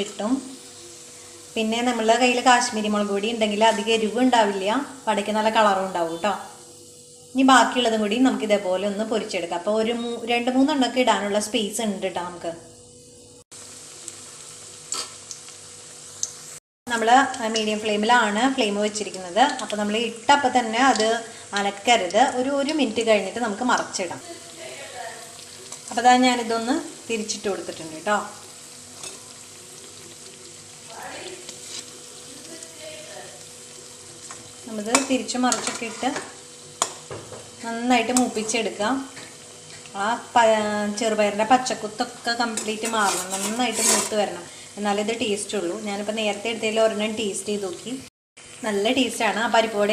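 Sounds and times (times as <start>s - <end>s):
food sizzling in hot oil: 0.0s - 49.9s.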